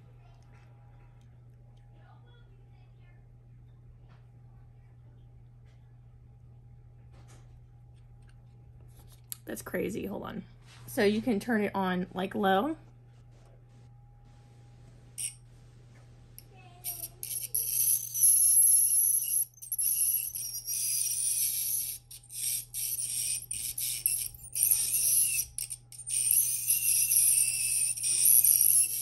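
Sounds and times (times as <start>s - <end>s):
high-pitched ultrasonic scaler buzzing: 15.2s - 15.5s, 16.4s - 29.0s.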